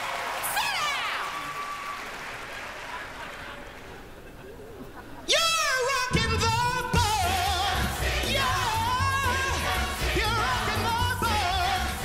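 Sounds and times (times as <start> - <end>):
man singing into a microphone: 5.3 - 12.0
band playing show tune: 6.0 - 12.0.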